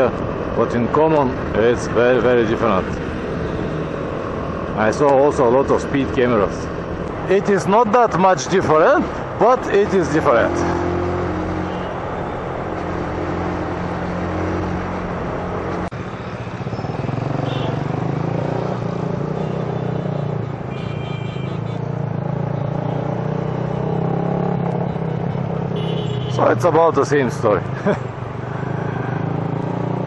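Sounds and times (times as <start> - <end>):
road and wind noise: 0.0 - 30.0.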